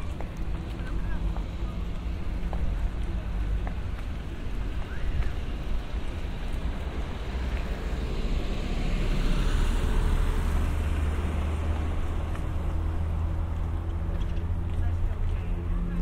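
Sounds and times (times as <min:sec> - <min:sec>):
road vehicle passing: 0:00.0 - 0:16.0.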